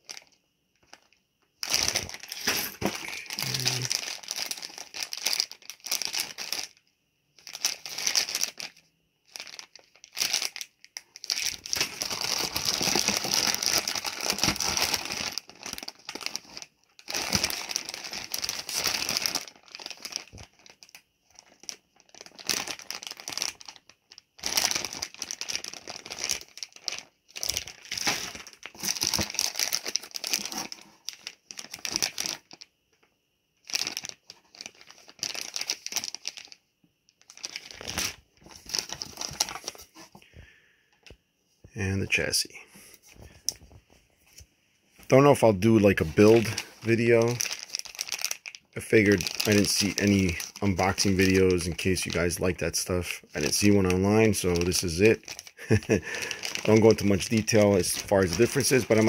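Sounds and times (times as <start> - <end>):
plastic bags crinkling: 0.0 - 6.8, 7.4 - 32.7, 33.6 - 36.6, 37.2 - 40.2, 45.0 - 59.0.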